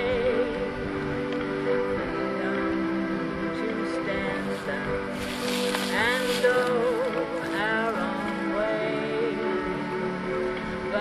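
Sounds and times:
woman singing with vibrato: 0:00.0 - 0:00.8, 0:02.0 - 0:11.0
instrumental backing music: 0:00.0 - 0:11.0.

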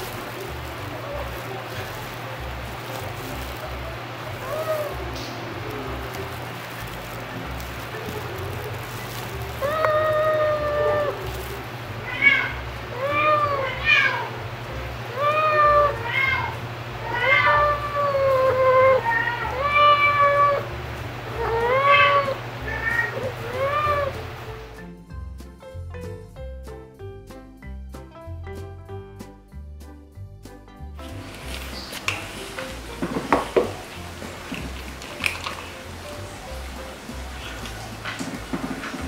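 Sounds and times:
cat meowing: 0:04.2 - 0:06.3, 0:07.8 - 0:14.4, 0:15.1 - 0:24.3.

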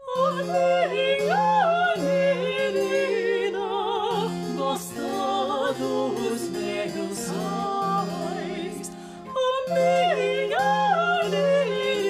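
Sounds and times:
women singing classical song: 0:00.0 - 0:12.0.

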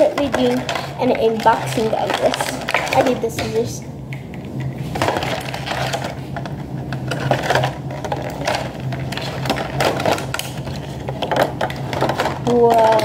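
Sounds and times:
plastic toys clicking and rattling: 0:00.0 - 0:03.8, 0:05.0 - 0:13.0.

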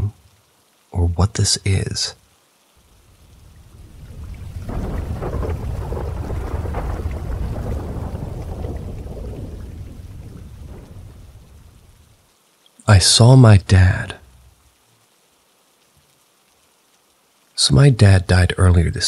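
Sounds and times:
rain-like hiss: 0:00.0 - 0:19.0
thunder-like rumble: 0:03.3 - 0:12.2.

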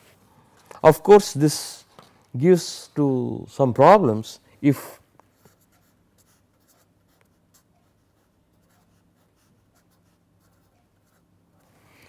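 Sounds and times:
faint low hum: 0:00.0 - 0:12.0
pen scratching on paper: 0:05.4 - 0:11.3.

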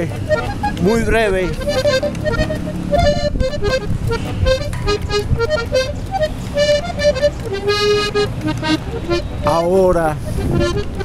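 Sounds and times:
accordion music: 0:00.0 - 0:11.0.

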